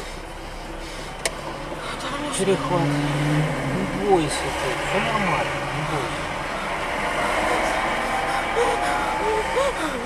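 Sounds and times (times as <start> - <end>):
vehicle running noise: 0.0 - 10.0.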